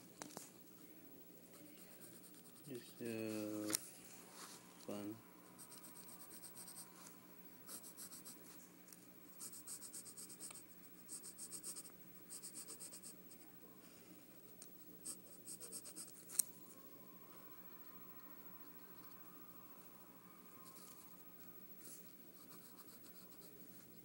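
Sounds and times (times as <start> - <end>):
pencil scratching on paper: 1.6 - 3.4, 5.6 - 7.0, 7.7 - 8.5, 9.4 - 13.4, 15.0 - 16.4, 21.8 - 24.0.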